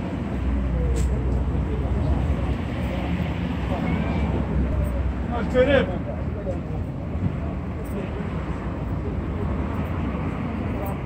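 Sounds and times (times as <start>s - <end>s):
faint voices: 0.0s - 11.0s
road traffic rumble: 0.0s - 11.0s.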